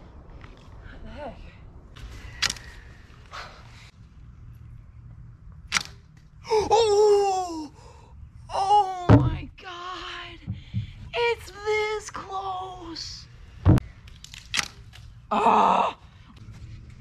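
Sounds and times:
bowstring snap: 0:02.4 - 0:02.8, 0:05.7 - 0:06.1.

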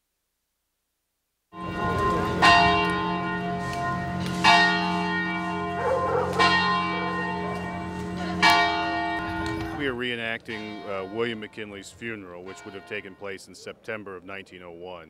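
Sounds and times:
large bell tolling: 0:01.6 - 0:13.4.

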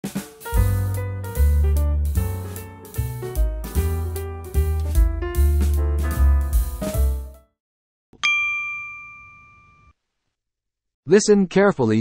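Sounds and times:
bell-like chime: 0:08.2 - 0:10.0.

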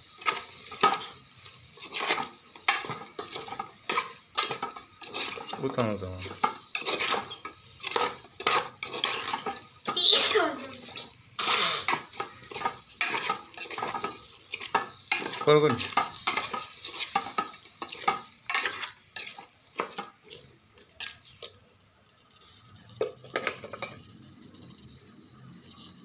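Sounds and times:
metal spoon scraping a pot: 0:00.2 - 0:21.5.

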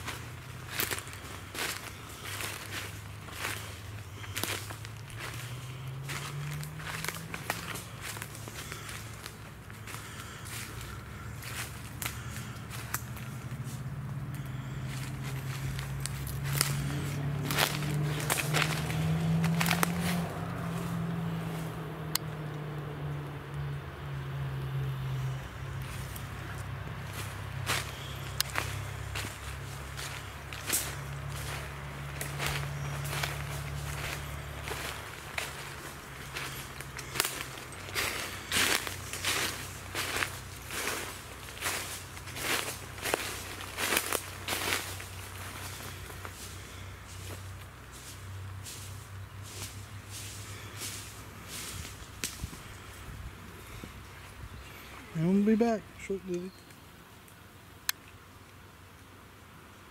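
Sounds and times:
low steady hum: 0:00.0 - 0:55.2
footsteps crunching dry leaves: 0:00.0 - 0:56.6.

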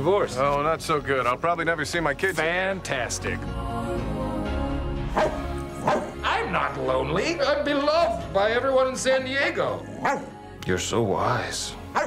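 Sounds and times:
trailer background music: 0:00.0 - 0:12.0
small dog barking: 0:05.2 - 0:06.1, 0:10.0 - 0:10.3.

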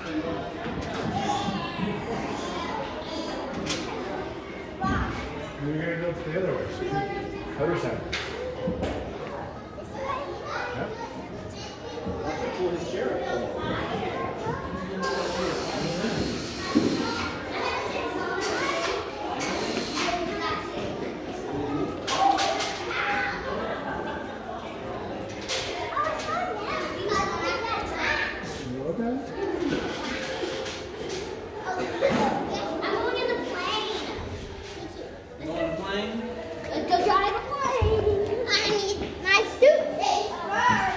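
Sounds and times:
children chattering and calling: 0:00.0 - 0:40.9.

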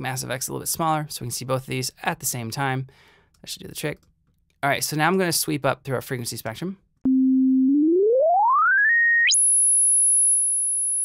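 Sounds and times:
sine wave tone gliding up: 0:07.1 - 0:11.0.

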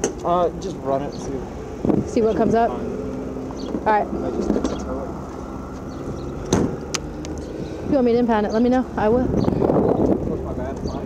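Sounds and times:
low rumble of vehicles: 0:00.0 - 0:11.0.

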